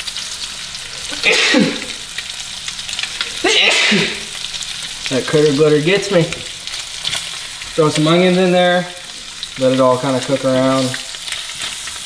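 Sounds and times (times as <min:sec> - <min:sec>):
fish sizzling in a pan: 0:00.0 - 0:12.0
man coughing: 0:01.1 - 0:02.0, 0:03.3 - 0:04.3.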